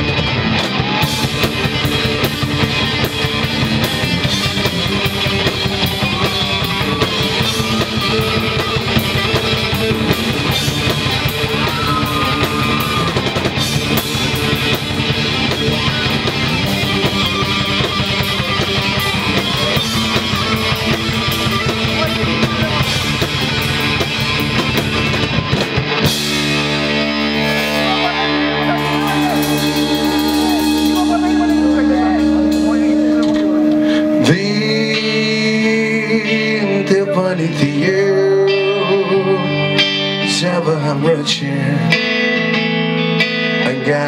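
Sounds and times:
drum kit: 0.0s - 36.9s
electric guitars held notes: 0.0s - 44.0s
rock band playing: 0.0s - 44.0s.

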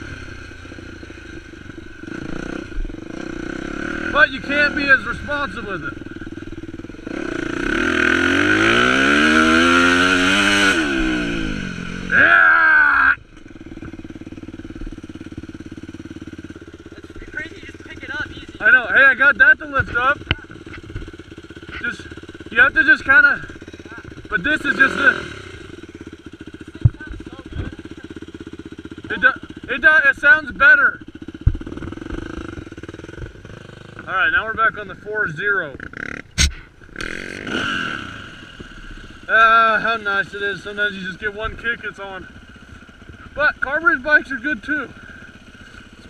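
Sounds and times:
dirt bike engine revving: 0.0s - 46.0s.

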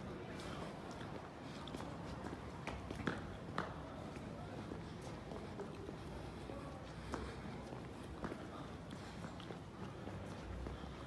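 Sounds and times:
footsteps on cobblestones: 0.0s - 11.0s.

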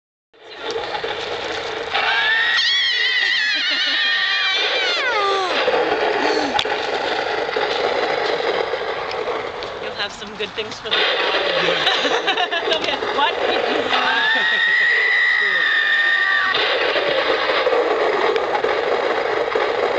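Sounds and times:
steady background noise: 0.4s - 19.9s
high-pitched wavering wail: 14.0s - 16.6s.

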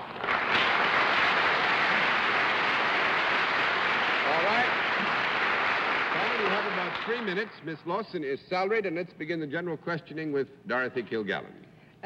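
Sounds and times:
audience applauding: 0.0s - 8.0s.

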